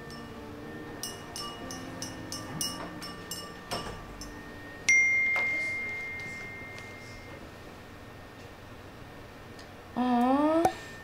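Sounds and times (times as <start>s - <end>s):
soft background music: 0.0s - 7.5s
phone notification ping: 3.8s - 7.4s.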